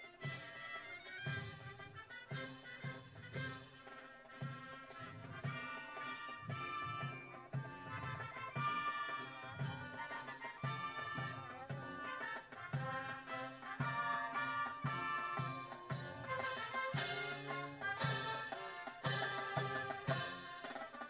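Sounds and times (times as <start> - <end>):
brass marching band playing: 0.0 - 21.0.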